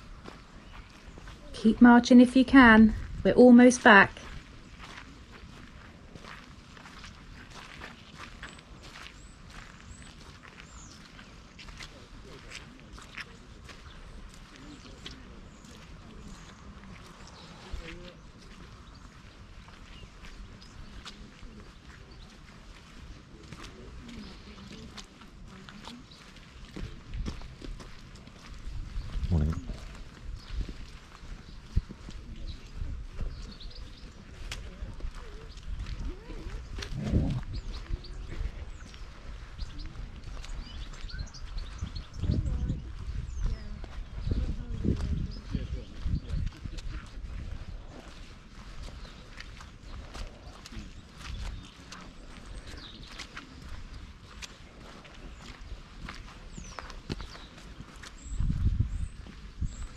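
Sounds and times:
footsteps on muddy path: 0:00.0 - 0:59.9
uneven low sounds: 0:36.8 - 0:37.7.

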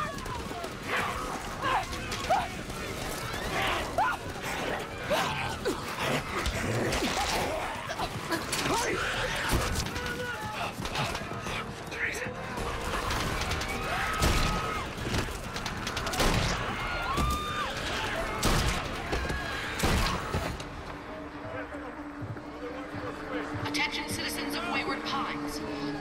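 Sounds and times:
people shouting: 0:00.0 - 0:11.8, 0:12.4 - 0:20.6
loud gunshots: 0:12.6 - 0:19.1.

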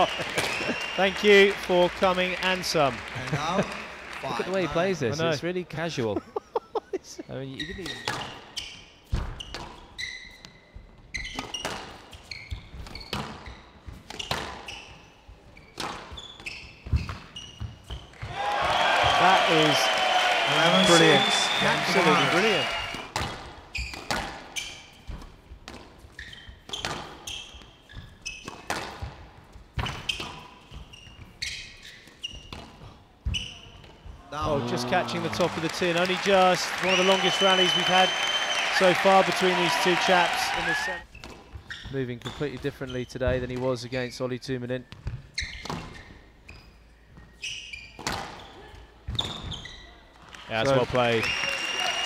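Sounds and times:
shoes squeaking on court floor: 0:07.5 - 0:18.2, 0:20.4 - 0:34.7, 0:40.8 - 0:50.2
squash ball hitting rackets and walls: 0:08.0 - 0:10.0, 0:11.2 - 0:15.0, 0:15.7 - 0:18.1, 0:23.0 - 0:31.3, 0:32.0 - 0:33.5, 0:47.9 - 0:49.5.

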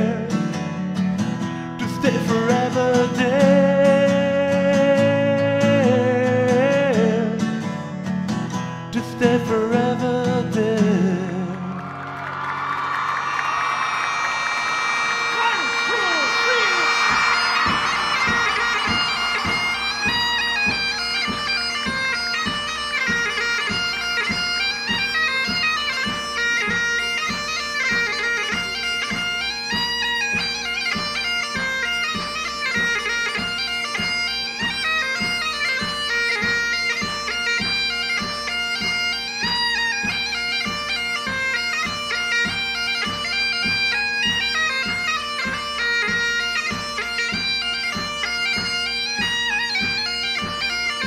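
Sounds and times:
bagpipes playing lively melody: 0:00.0 - 0:08.5, 0:13.2 - 0:51.0
audience cheering and whooping: 0:11.6 - 0:21.7
steady high tones: 0:13.4 - 0:23.8.

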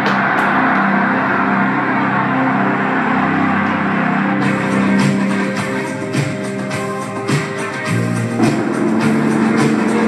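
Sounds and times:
loud music playing: 0:00.0 - 0:10.0.

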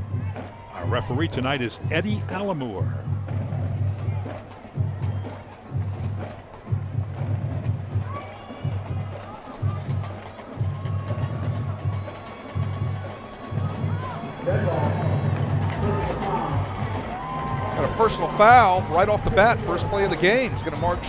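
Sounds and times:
low drum pulses: 0:00.0 - 0:21.0.

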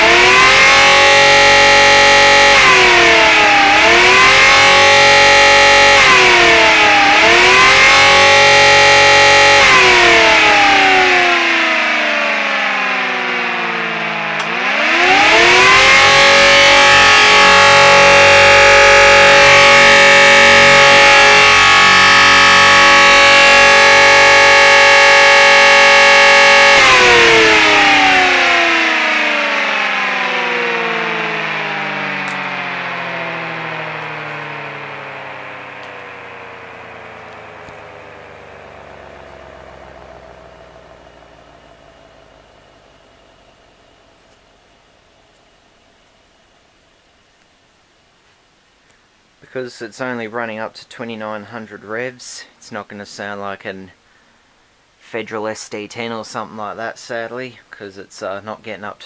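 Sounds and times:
motor-driven siren wailing: 0:00.0 - 0:45.3.

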